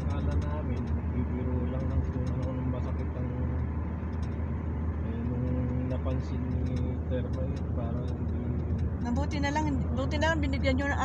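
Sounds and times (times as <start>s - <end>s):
car driving rumble from inside: 0.0s - 11.0s.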